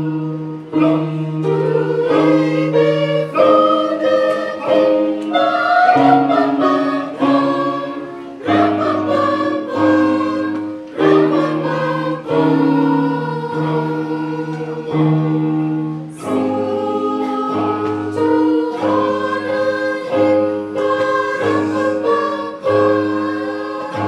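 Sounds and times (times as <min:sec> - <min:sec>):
choir singing a carol: 0:00.0 - 0:24.0.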